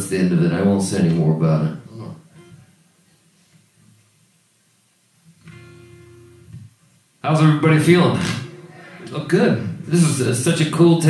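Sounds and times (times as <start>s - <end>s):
acoustic guitar note plucked: 5.4s - 6.7s.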